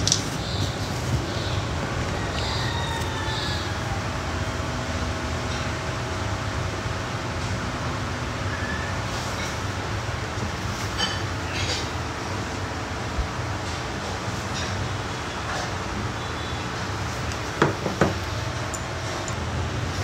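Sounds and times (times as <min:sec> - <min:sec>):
low rumbling background noise: 0:00.0 - 0:20.0.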